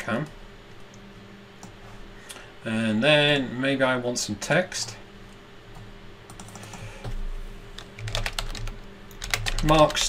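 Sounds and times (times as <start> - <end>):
computer keyboard typing: 6.3 - 7.1, 7.8 - 10.0.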